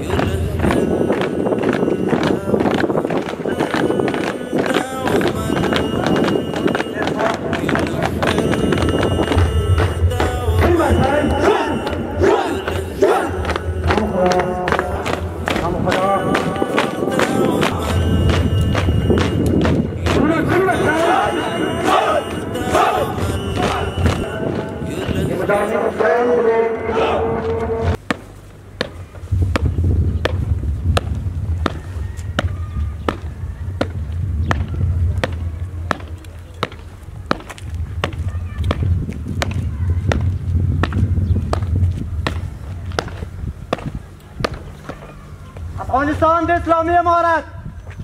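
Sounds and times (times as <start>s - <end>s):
boots marching on pavement: 0.0s - 25.9s, 26.9s - 48.0s
men chanting in unison: 0.0s - 28.0s.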